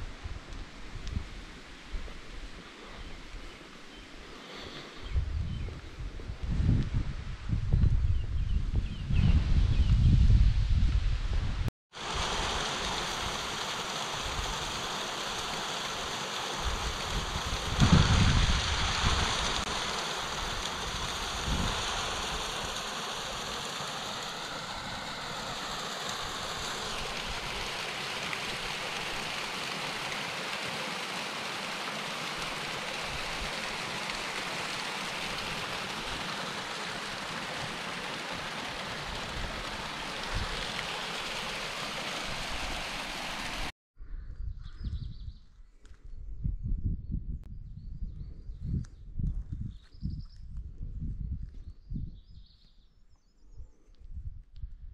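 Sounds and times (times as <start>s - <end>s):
stream running over rocks: 11.9s - 43.7s.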